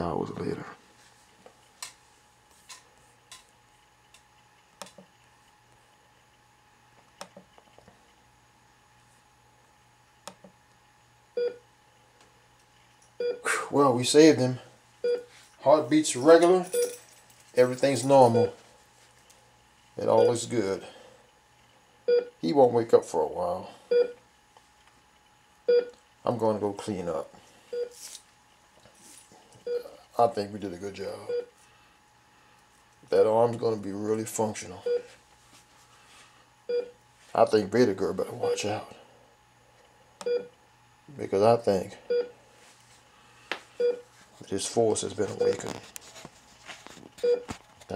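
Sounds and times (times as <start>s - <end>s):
faint low hum: 0.0s - 47.9s
heart monitor beep: 11.4s - 11.6s, 13.2s - 13.5s, 15.0s - 15.3s, 22.1s - 22.3s, 23.9s - 24.2s, 25.7s - 26.0s, 27.7s - 28.0s, 29.6s - 30.0s, 31.3s - 31.5s, 34.8s - 35.1s, 36.7s - 37.0s, 40.2s - 40.5s, 42.1s - 42.3s, 43.8s - 44.0s, 47.2s - 47.5s.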